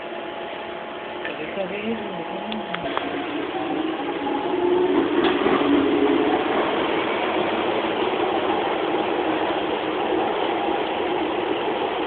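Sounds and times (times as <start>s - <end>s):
train running: 0.0s - 12.0s.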